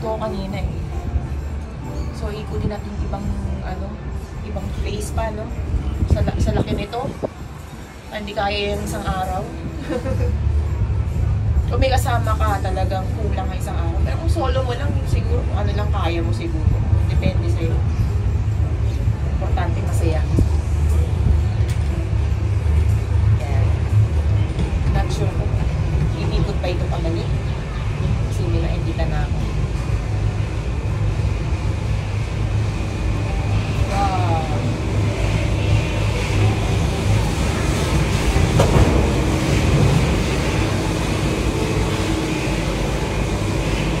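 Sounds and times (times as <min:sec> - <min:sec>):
cable car rumbling: 0:00.0 - 0:44.0
high steady whine: 0:00.0 - 0:44.0.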